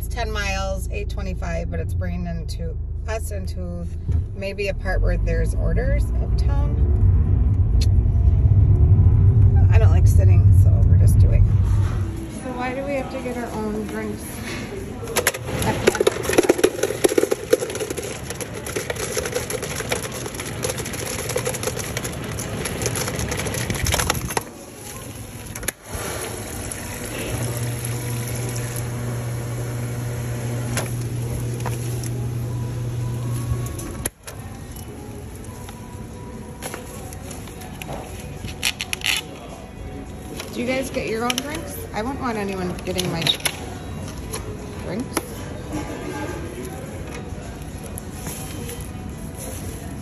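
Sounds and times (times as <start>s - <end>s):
faint background music: 0.0s - 50.0s
dispenser motor whir: 15.2s - 36.2s
ice cubes rattling into cup: 15.4s - 24.5s.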